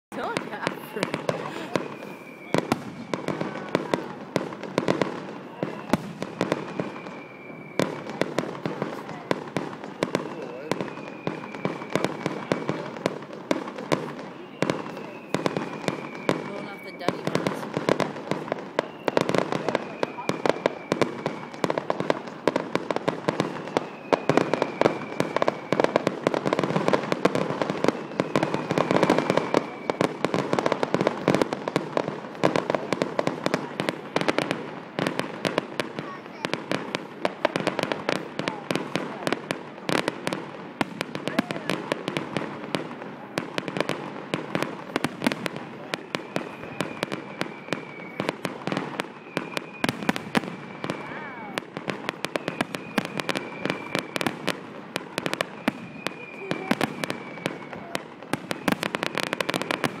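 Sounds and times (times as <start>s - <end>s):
fireworks bangs and crackles: 0.1s - 60.0s
fireworks whistles: 0.1s - 60.0s.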